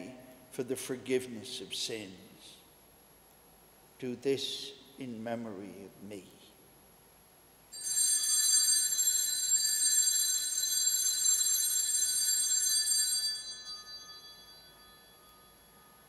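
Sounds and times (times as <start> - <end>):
altar bells ringing: 7.7 - 16.0.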